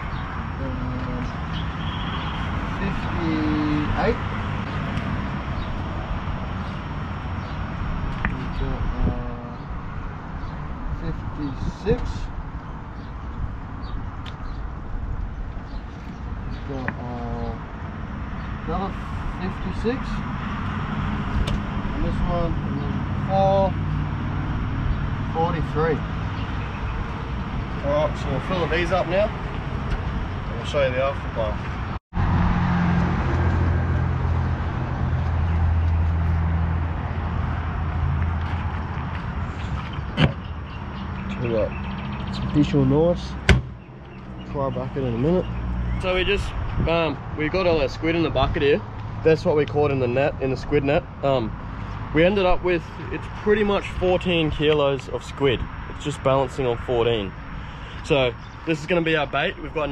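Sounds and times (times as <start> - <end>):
sharp knock: 43.5 - 43.8.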